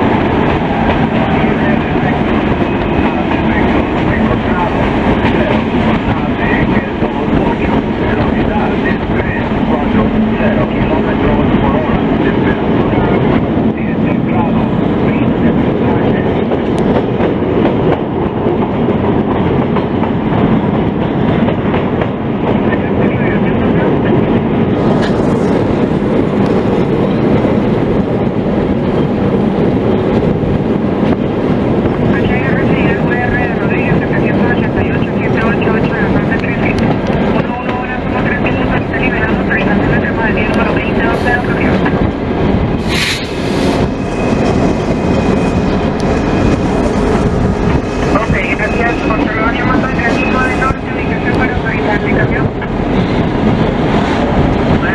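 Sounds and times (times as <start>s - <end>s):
train wheels rumbling on rails: 0.0s - 54.9s.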